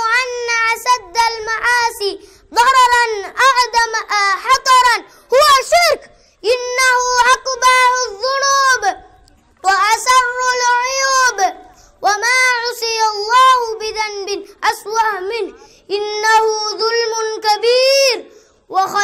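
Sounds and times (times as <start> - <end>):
boy giving speech into microphone: 0.0 - 19.0.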